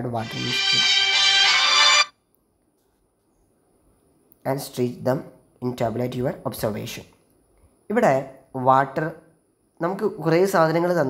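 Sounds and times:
thin high whine: 0.0s - 2.1s
phone ringtone: 0.2s - 2.1s.

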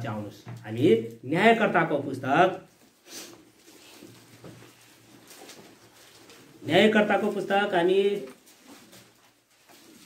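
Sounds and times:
pages being leafed through: 3.6s - 6.5s.

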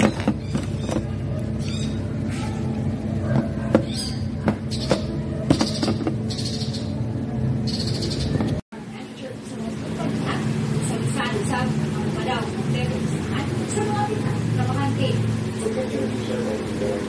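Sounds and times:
steady background hum: 0.0s - 17.0s.

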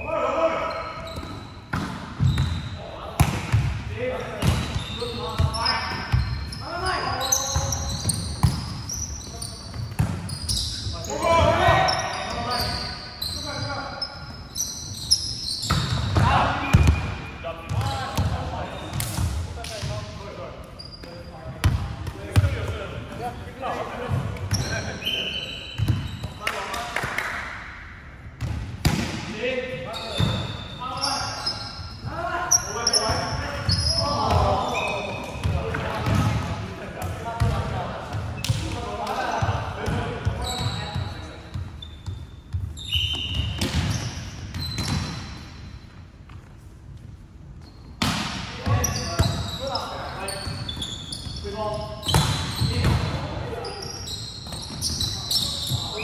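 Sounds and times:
players calling and talking: 0.0s - 45.8s, 47.6s - 56.0s.

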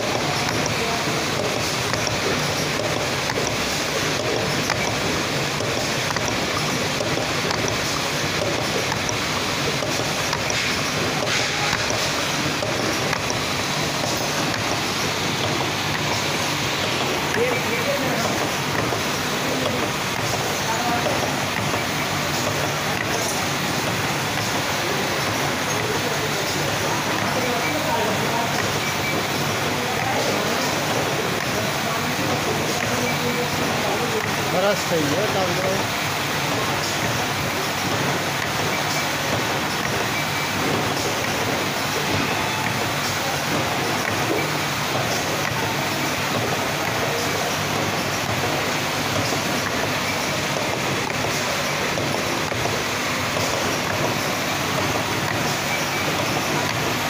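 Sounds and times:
packing machinery running: 0.0s - 57.0s.

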